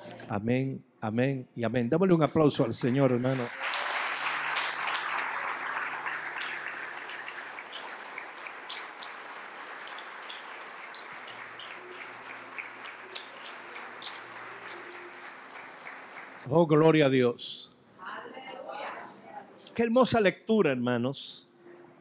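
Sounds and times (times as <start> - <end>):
crowd applauding: 2.7 - 17.0.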